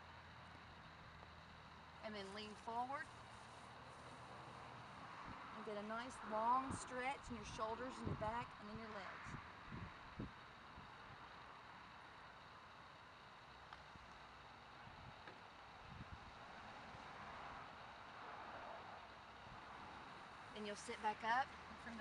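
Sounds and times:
faint outdoor hiss: 0.0 - 22.0
wind noise on microphone: 6.7 - 8.5, 9.3 - 10.4, 15.9 - 16.3.

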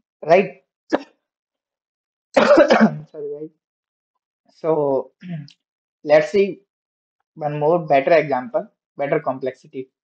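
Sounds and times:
person clearing throat: 2.4 - 3.2.

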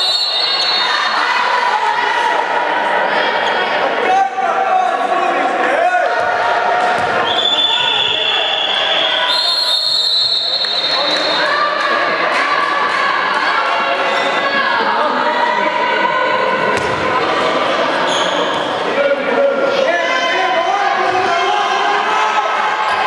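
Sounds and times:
players' voices: 0.0 - 23.0.

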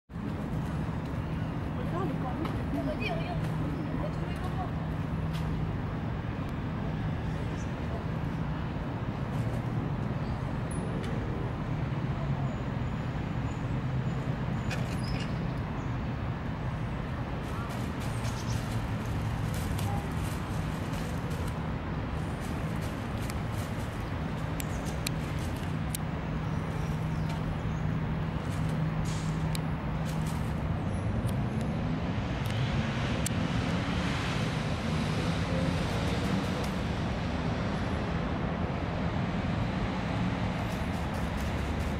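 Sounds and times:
city traffic rumble: 0.1 - 41.9
light ticks: 24.4 - 26.1, 29.3 - 29.7.

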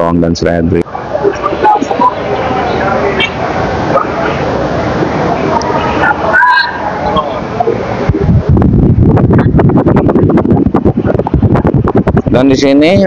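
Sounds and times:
busy market noise: 0.0 - 13.0.

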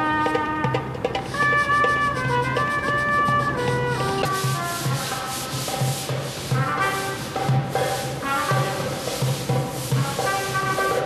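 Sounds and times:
quiet music: 0.0 - 11.0
scrubbing stone steps: 4.2 - 10.9.

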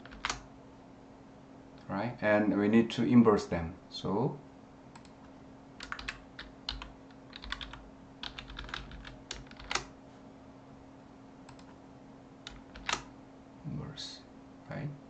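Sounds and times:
computer keyboard typing: 0.0 - 0.4, 5.0 - 5.2, 5.8 - 9.9, 11.5 - 11.8, 12.4 - 13.1.

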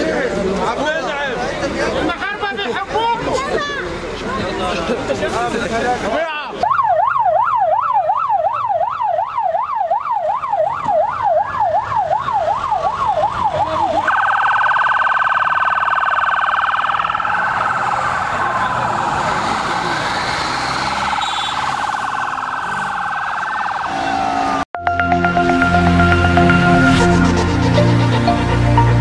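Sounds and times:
siren yelping: 6.6 - 18.8, 20.8 - 28.5.

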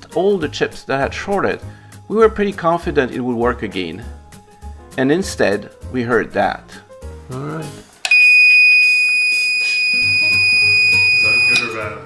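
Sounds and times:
high-pitched buzzer beep: 8.1 - 11.7.

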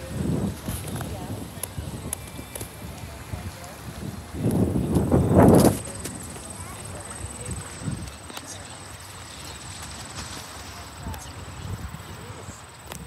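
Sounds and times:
faint distant voices: 0.0 - 13.0
wind hiss: 0.0 - 13.0.

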